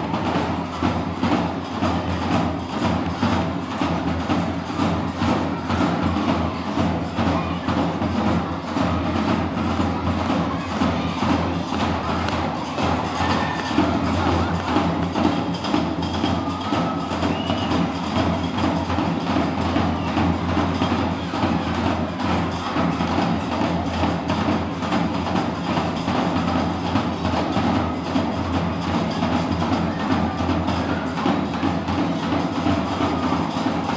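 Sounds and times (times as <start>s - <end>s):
clicking percussion rhythm: 0.0s - 33.9s.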